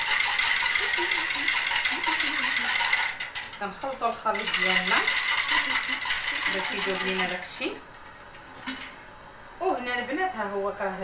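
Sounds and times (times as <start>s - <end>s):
utensil stirring in a bowl: 0.0s - 8.4s.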